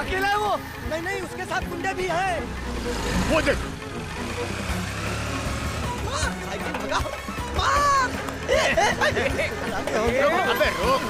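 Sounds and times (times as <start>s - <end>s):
background music with held tones: 0.0s - 11.0s
motorcycle engines running: 0.0s - 11.0s
people shouting: 7.2s - 8.2s, 10.2s - 11.0s.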